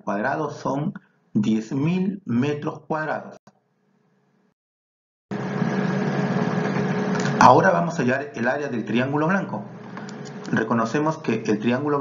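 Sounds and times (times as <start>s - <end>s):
low hum with hiss: 5.3s - 12.0s.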